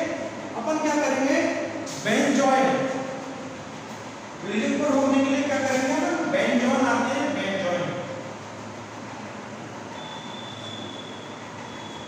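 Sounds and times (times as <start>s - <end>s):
room noise: 0.0s - 12.0s
thin high squeak: 9.9s - 12.0s.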